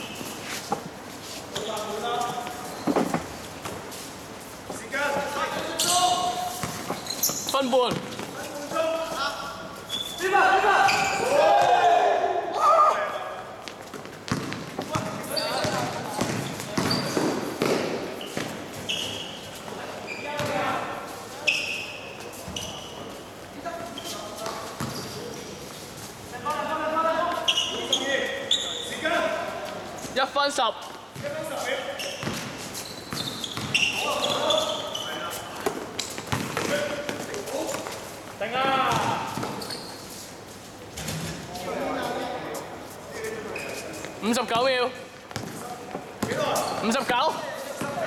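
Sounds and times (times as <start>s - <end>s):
sneakers squeaking: 0.0s - 11.9s, 13.0s - 48.0s
players shouting: 10.2s - 13.4s
basketball bouncing on hard court: 14.3s - 18.5s, 33.1s - 33.8s, 36.3s - 36.9s, 38.9s - 39.6s.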